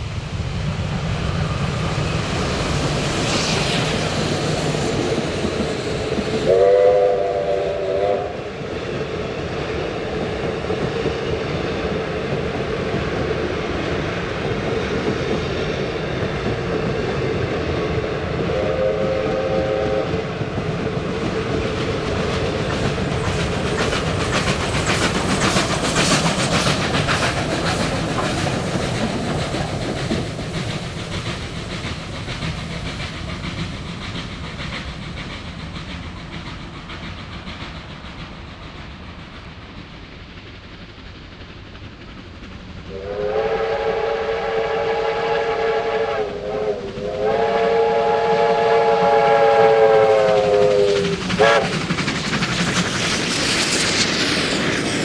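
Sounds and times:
train wheels clicking over rail joints: 0.0 - 44.1, 46.4 - 55.0
steam whistle blast: 6.5 - 8.4, 18.5 - 20.2, 42.9 - 51.7.

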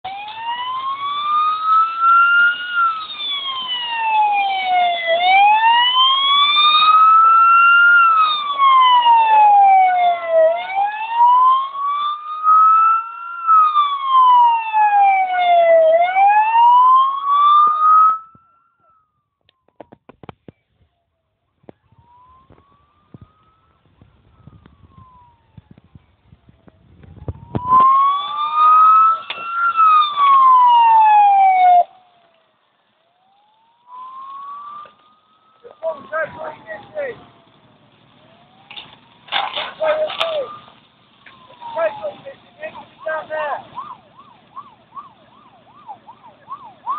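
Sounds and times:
fire engine siren wailing: 0.0 - 46.9.

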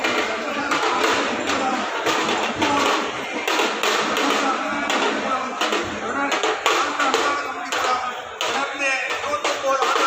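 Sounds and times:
continuous background din: 0.0 - 10.0.

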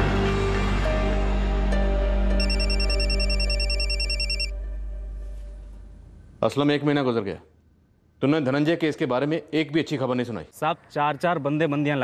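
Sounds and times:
background music: 0.0 - 6.4
phone ringing with warbling trill: 2.4 - 4.5.

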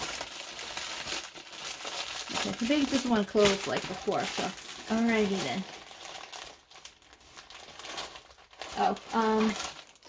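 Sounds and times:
plastic film crinkling: 0.0 - 10.0.

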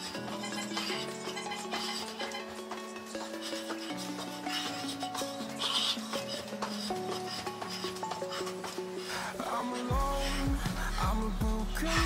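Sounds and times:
pop music with steady beat: 9.2 - 12.0.

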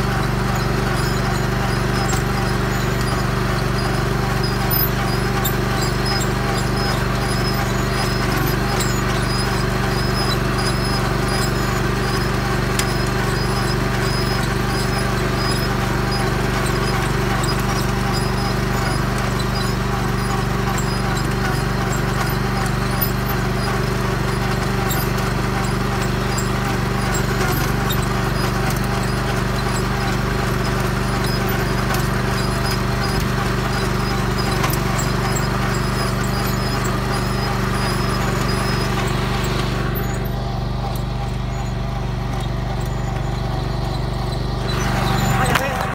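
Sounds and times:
implement clatter and ticking: 0.0 - 45.9
tractor engine running: 0.0 - 45.9.

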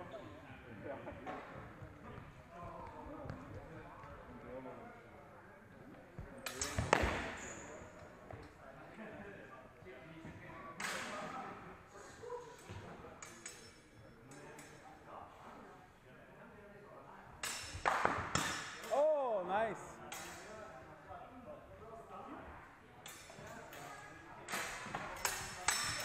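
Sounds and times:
murmur of voices: 0.0 - 26.0.

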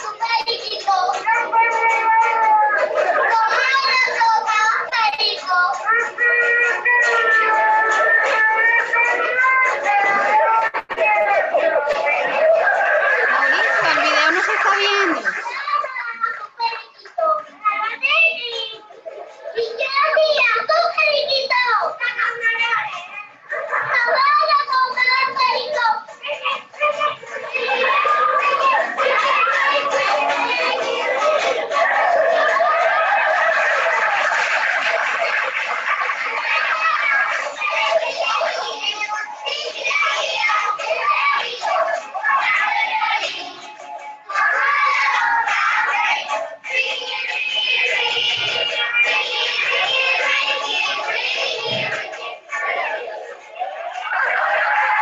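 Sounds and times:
music with singing voices: 0.0 - 15.6, 23.0 - 55.0
children speaking and calling out: 0.0 - 55.0.

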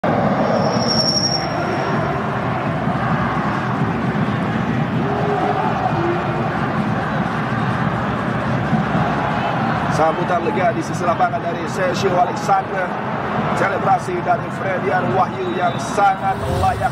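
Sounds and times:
stadium crowd roar: 0.0 - 16.9
short high-pitched whistle: 0.5 - 2.0.

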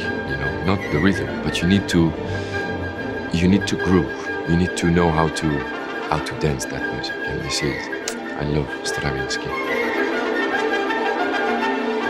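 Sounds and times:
orchestral strings playing chords: 0.0 - 12.0.

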